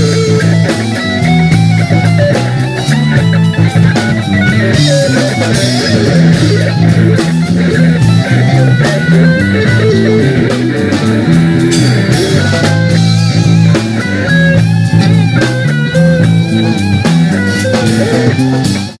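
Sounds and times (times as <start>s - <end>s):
bass riff: 0.0s - 19.0s
drums: 0.0s - 19.0s
electric guitar solo: 0.0s - 19.0s.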